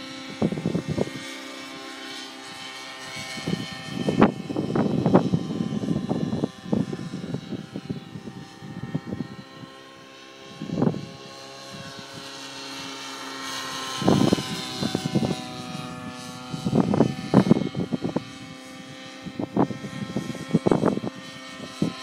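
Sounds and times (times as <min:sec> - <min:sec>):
model helicopter rotor whine: 0:00.0 - 0:22.0.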